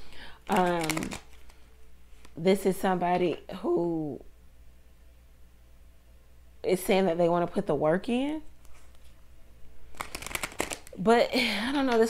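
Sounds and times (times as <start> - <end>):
cards being shuffled: 0.4 - 1.6, 8.6 - 9.2, 9.9 - 11.0.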